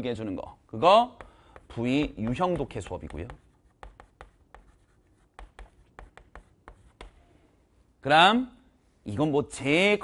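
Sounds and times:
chalk tapping on chalkboard: 0:01.2 - 0:07.3.

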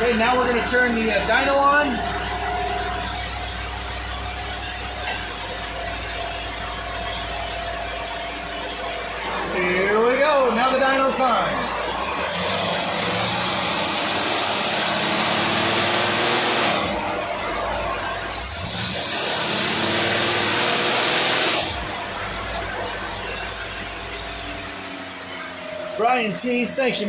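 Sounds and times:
engine revving and idling: 0:00.0 - 0:27.0
hiss: 0:12.2 - 0:17.0, 0:18.4 - 0:21.8.

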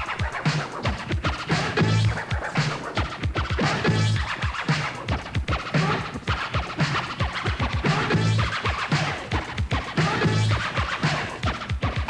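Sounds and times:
hip-hop music: 0:00.0 - 0:12.0
turntable scratching: 0:00.0 - 0:12.0.

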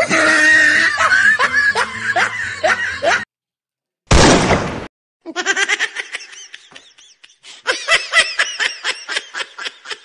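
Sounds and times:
person laughing: 0:00.0 - 0:03.3, 0:05.3 - 0:10.0.

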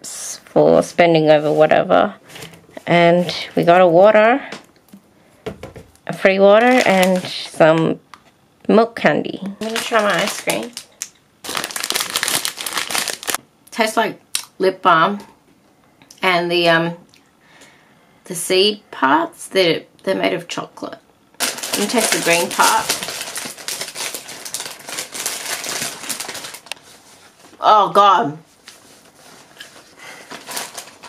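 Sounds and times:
plastic wrapper crinkling: 0:06.4 - 0:07.6, 0:09.6 - 0:13.4, 0:21.4 - 0:27.6, 0:28.6 - 0:31.0
crunching frozen ice bar: 0:09.6 - 0:13.4.

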